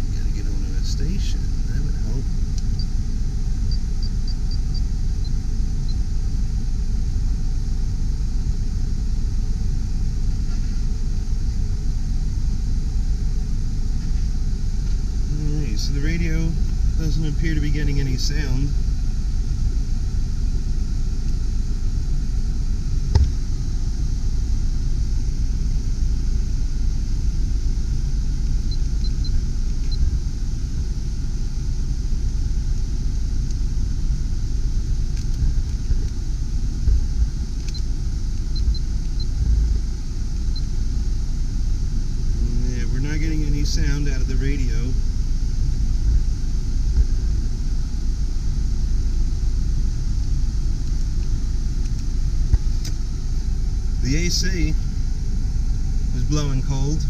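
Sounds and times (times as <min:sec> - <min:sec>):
air-conditioning blower rushing: 0:00.0 - 0:57.0
car engine idling: 0:00.0 - 0:57.0.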